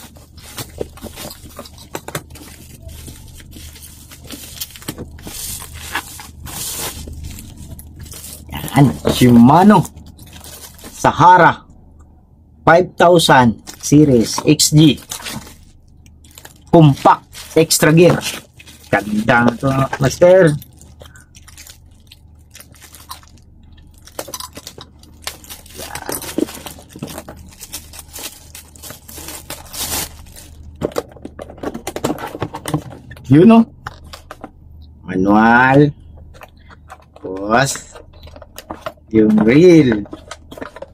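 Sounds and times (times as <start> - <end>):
bubble wrap crinkling: 0.0 - 11.2, 13.6 - 33.1, 36.1 - 40.9.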